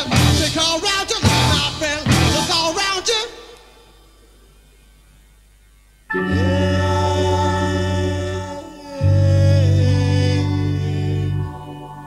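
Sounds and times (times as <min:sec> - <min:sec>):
music: 0:00.0 - 0:04.6, 0:05.7 - 0:12.0
low mains hum: 0:00.0 - 0:12.0.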